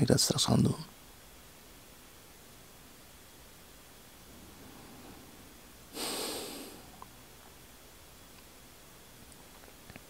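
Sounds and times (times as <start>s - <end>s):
person exhaling through nose: 5.9s - 7.0s.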